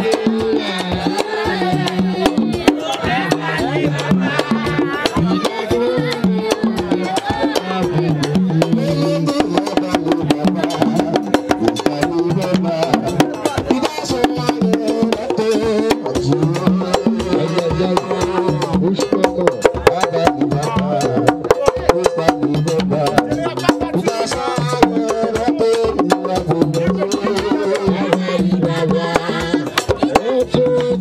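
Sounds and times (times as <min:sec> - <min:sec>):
drums: 0:00.0 - 0:31.0
person singing through microphone: 0:00.0 - 0:31.0.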